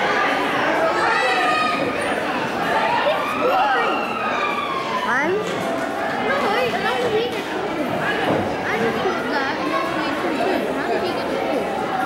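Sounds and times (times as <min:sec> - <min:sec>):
crowd hubbub in large hall: 0:00.0 - 0:12.0.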